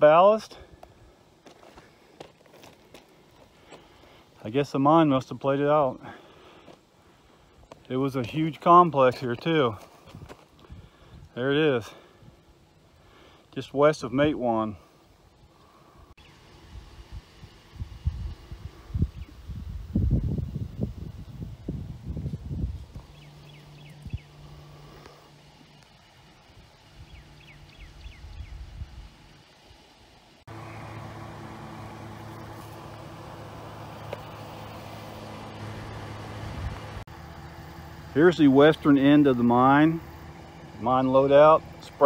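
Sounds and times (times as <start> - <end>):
low motor hum: 14.8 - 42.0
wind buffeting microphone: 16.7 - 24.4, 26.5 - 29.3.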